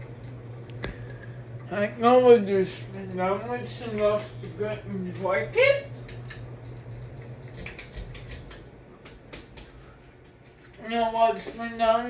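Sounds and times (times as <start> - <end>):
ceiling fan motor humming: 0.0 - 12.0.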